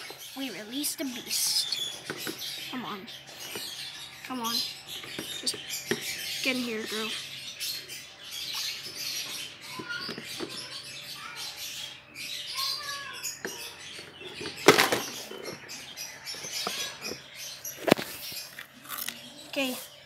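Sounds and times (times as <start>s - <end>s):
plastic containers rustling: 4.8s - 7.1s, 8.7s - 10.8s, 13.4s - 19.8s.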